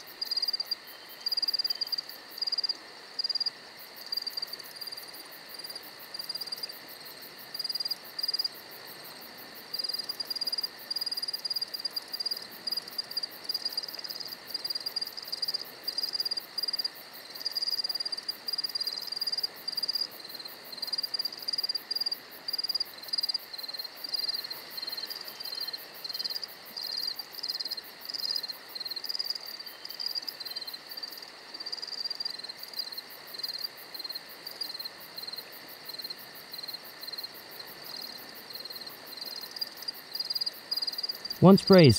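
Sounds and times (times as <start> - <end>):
crickets chirping: 0.0 - 41.9
lower-pitched cricket chirping: 0.0 - 41.9.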